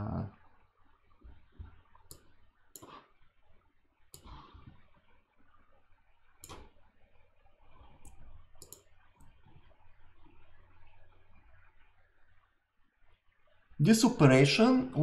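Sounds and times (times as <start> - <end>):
computer mouse clicks: 2.0 - 3.1, 4.1 - 4.8, 6.4 - 6.9, 7.8 - 9.4.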